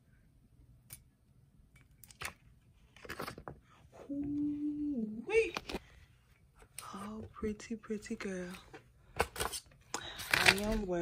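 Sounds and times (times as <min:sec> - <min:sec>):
paper rustling: 0:02.8 - 0:03.6.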